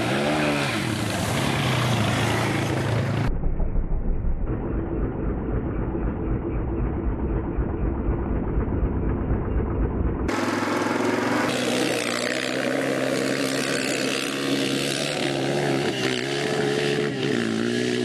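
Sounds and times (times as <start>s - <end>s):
quad bike engine running: 0.0s - 3.3s, 4.4s - 18.0s.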